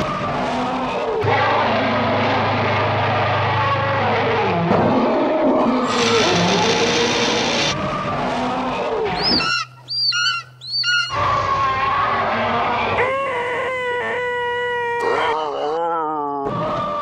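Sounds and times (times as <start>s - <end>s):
shrill bird of prey screeches: 9.2s - 11.3s.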